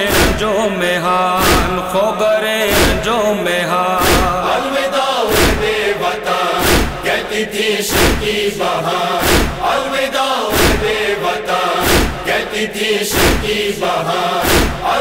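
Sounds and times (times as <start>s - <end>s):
chest-beating thumps: 0.0s - 0.6s, 1.4s - 1.8s, 2.7s - 3.1s, 4.0s - 4.5s, 5.3s - 5.9s, 6.6s - 7.2s, 7.9s - 8.5s, 9.2s - 9.8s, 10.5s - 11.1s, 11.8s - 12.4s, 13.1s - 13.8s, 14.4s - 15.0s
male chorus chanting lament: 0.0s - 15.0s.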